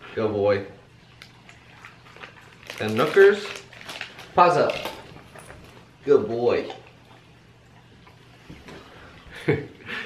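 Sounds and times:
dog chewing: 1.1s - 9.2s.

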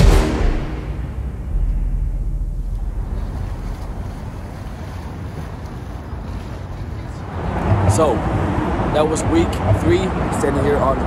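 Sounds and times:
wind rumbling on microphone: 1.0s - 11.0s
river water: 1.5s - 11.0s.

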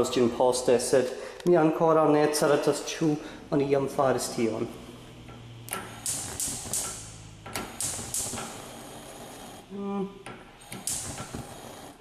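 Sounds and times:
gas hiss: 3.2s - 12.0s
spark igniter clicking: 5.2s - 9.6s, 10.2s - 12.0s.

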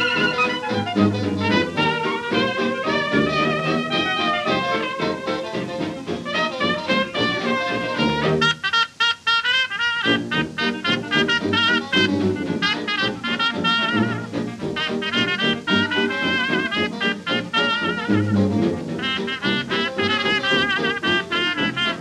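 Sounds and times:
jazz dance band playing: 0.0s - 22.0s.

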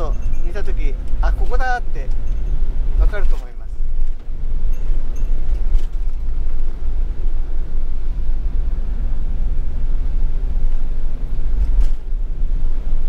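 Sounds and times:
faint light rattles: 0.0s - 6.8s
vehicle interior rumble: 0.0s - 13.0s.

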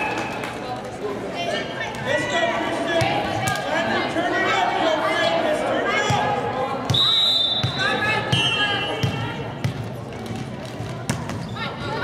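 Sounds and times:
spectators' voices and cheers: 0.0s - 9.6s
referee's whistle: 6.9s - 9.2s.

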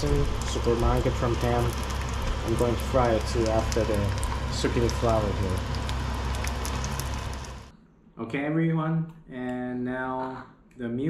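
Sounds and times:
oil sizzling in a frying pan: 0.0s - 7.7s.

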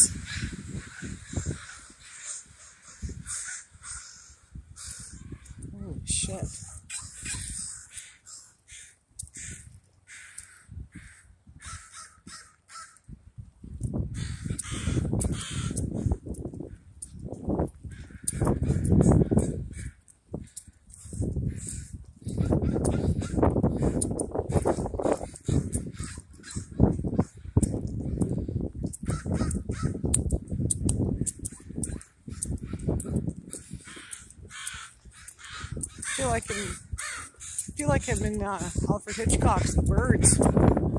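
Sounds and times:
crows cawing: 0.0s - 5.7s, 6.5s - 13.1s, 14.1s - 16.8s, 17.8s - 28.4s, 29.0s - 30.1s, 31.8s - 37.8s.

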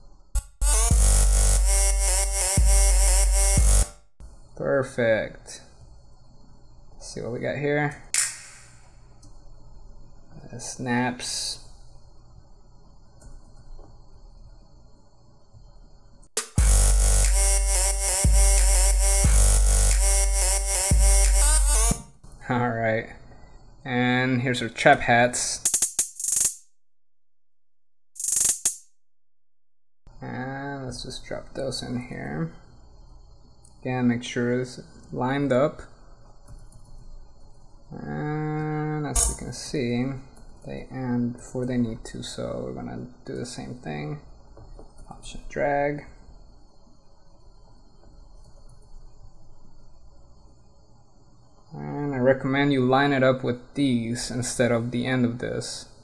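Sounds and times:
electronic dance music drop: 0.4s - 4.0s, 16.4s - 22.2s
rapid hi-hat ticks: 16.4s - 22.0s, 25.6s - 26.6s.

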